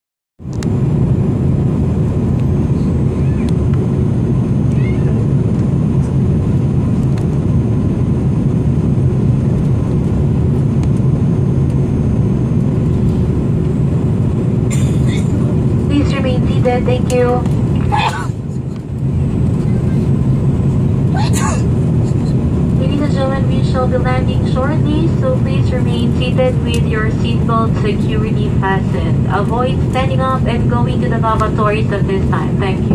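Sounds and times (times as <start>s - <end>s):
jet engine and airflow rumble: 0.4s - 32.9s
faint steady hum: 21.1s - 32.9s.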